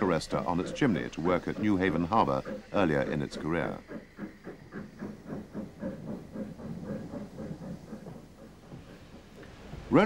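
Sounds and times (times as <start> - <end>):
steam train passing: 0.0 - 10.0.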